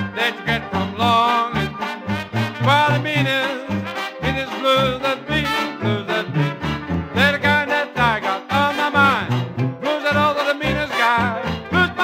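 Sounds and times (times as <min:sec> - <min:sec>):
traditional jazz band playing: 0:00.0 - 0:12.0.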